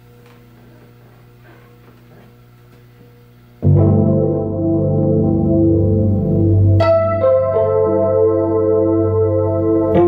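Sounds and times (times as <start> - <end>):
electrical hum: 0.0 - 10.0
organ chord over bass: 3.6 - 10.0.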